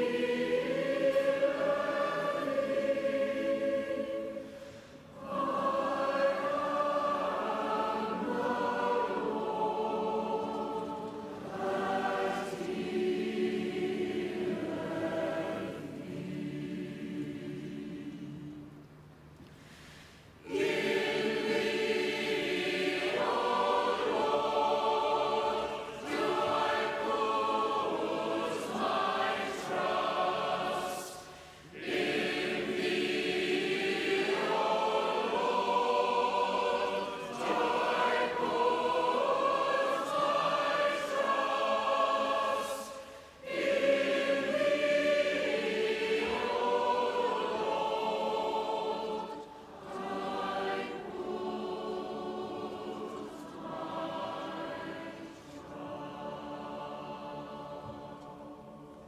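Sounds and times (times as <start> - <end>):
choir singing a hymn: 0.0 - 18.9, 19.8 - 59.0.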